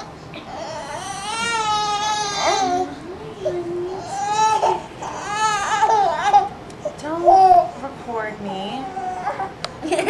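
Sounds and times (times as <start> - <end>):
infant crying: 0.0 - 6.5.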